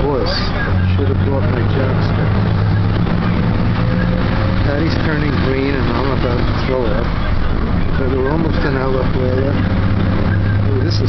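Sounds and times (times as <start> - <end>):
bus engine drone: 0.0 - 11.0
road noise: 0.0 - 11.0.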